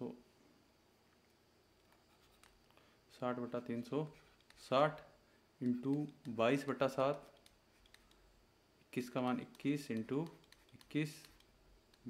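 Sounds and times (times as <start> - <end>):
stylus writing on screen: 5.6 - 8.2, 9.0 - 12.0.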